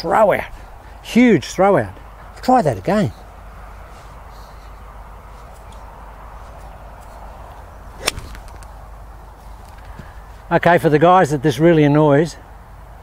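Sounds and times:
faint outdoor background noise: 0.0s - 13.0s
golf club striking ball: 7.9s - 8.8s.

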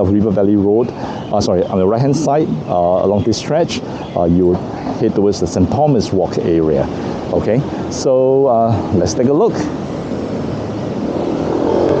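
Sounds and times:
road traffic passing: 0.0s - 12.0s
engine hum: 6.6s - 12.0s.

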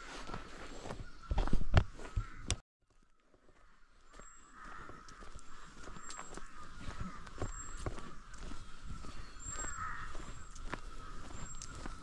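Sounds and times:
birds calling: 0.0s - 12.0s
footsteps on dirt trail: 0.0s - 12.0s
crow cawing: 1.2s - 12.0s.

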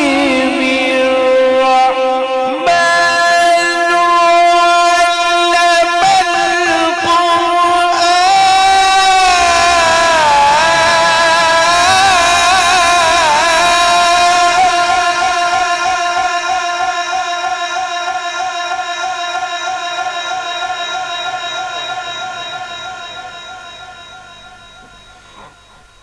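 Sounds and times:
man reciting melodically: 0.0s - 24.4s.

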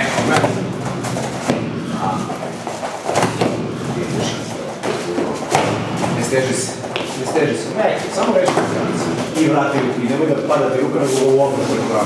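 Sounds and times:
boxing gloves thudding: 0.0s - 7.5s
sharp knocks: 0.0s - 7.5s.

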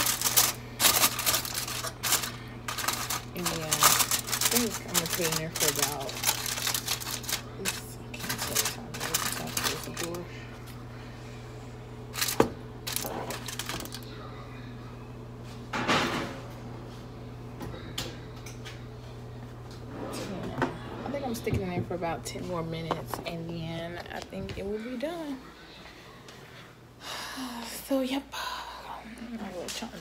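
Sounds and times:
aluminium foil crinkling: 0.0s - 10.3s, 12.1s - 14.1s
steady low hum: 0.0s - 30.0s.

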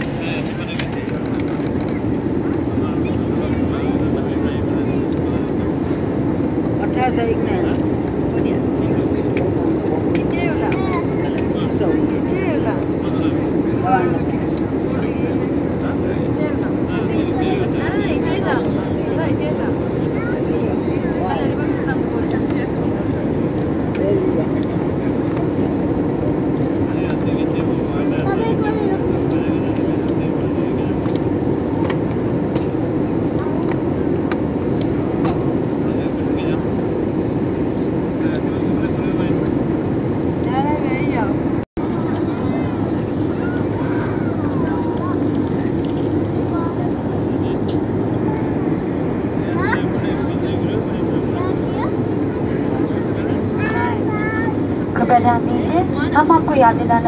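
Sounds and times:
faint voices: 0.0s - 57.0s
jet engine and airflow drone: 0.0s - 57.0s.

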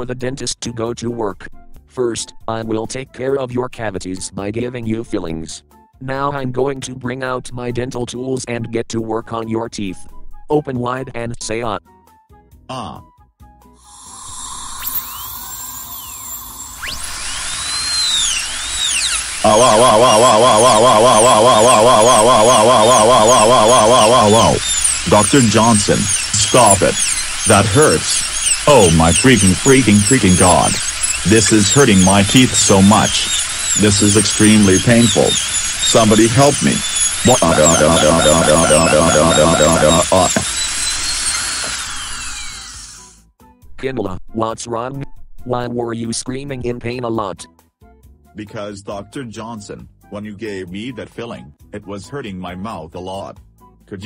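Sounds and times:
dentist's drill whining: 13.8s - 43.2s
person crying out in pain: 19.4s - 24.6s.

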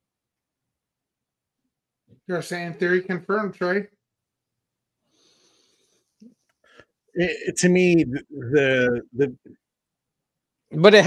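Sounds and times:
breath into microphone: 5.0s - 7.0s.

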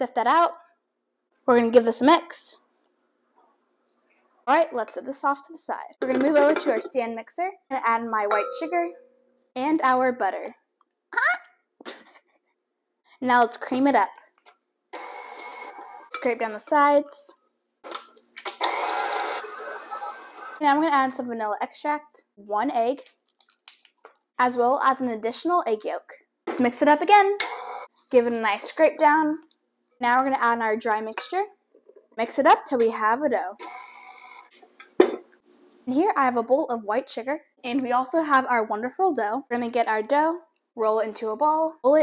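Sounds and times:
stand mixer running: 18.8s - 20.6s.

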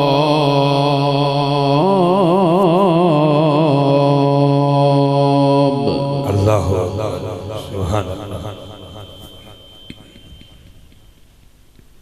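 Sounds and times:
man reciting melodically: 0.0s - 10.4s.

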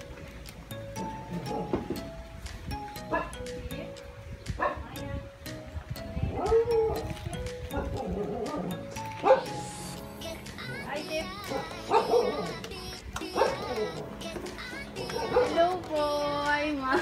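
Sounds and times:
background music with steady beat: 0.0s - 17.0s
dog barking and yelping: 1.3s - 1.8s, 3.1s - 3.4s, 4.6s - 4.8s, 6.3s - 7.1s, 7.7s - 9.6s, 11.4s - 12.6s, 13.3s - 14.0s, 15.0s - 15.7s.

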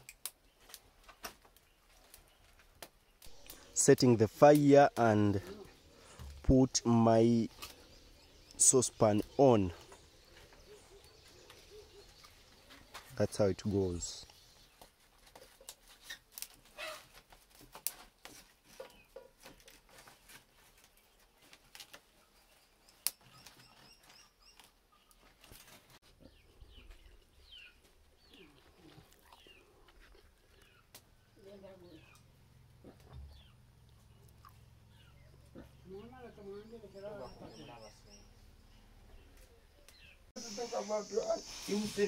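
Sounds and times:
fire crackling: 0.0s - 13.3s, 39.4s - 42.0s
birds chirping: 0.3s - 15.8s, 22.3s - 42.0s.

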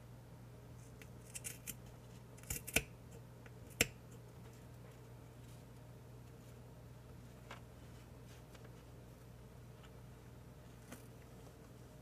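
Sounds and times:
scissors snipping fabric: 2.4s - 2.9s.

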